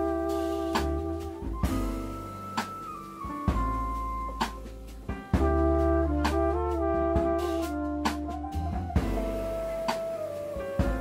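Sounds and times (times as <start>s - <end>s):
keyboard chords: 0.0s - 7.4s, 8.4s - 11.0s
live jazz band: 0.0s - 11.0s
sharp drum accent: 0.0s - 11.0s
trumpet: 0.0s - 11.0s.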